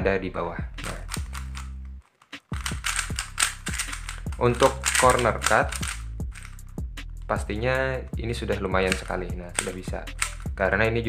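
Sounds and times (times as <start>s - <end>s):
background music with bass: 0.0s - 11.0s
puzzle cube clicking: 0.8s - 6.6s, 8.9s - 10.5s.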